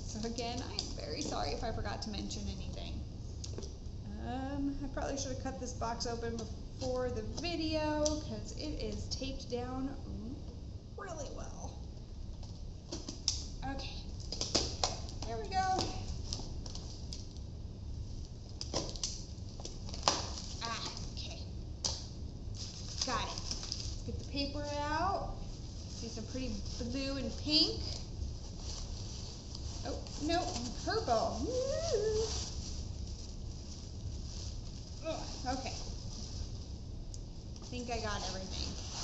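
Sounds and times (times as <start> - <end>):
steady low hum: 0.0 - 39.0
tissue paper rustling: 13.0 - 17.3, 18.0 - 21.4, 22.4 - 39.0.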